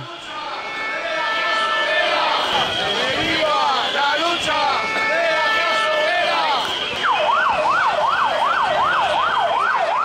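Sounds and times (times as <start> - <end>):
voices: 0.0 - 9.9
siren wailing: 0.0 - 10.0.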